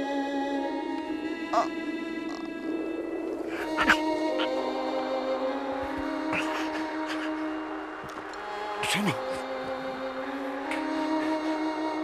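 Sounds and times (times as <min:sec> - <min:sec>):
sustained music drone: 0:00.0 - 0:12.0.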